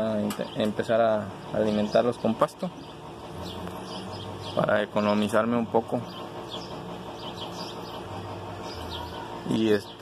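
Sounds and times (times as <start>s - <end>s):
faint bird chirps: 6.1s - 10.0s.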